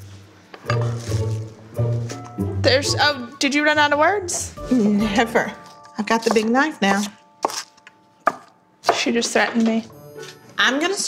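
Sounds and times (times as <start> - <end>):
knife chopping on wooden board: 6.2 - 7.7.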